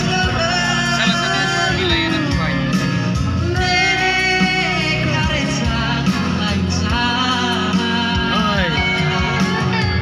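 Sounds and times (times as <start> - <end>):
boy singing into microphone: 0.0 - 9.9
instrumental accompaniment: 0.0 - 10.0.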